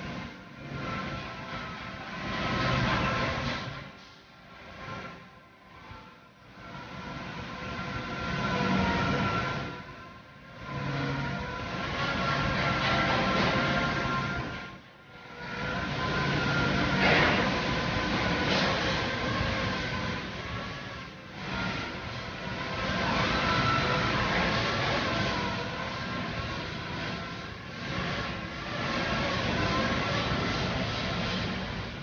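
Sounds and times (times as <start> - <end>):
laser cutting machine running: 0.0 - 32.0.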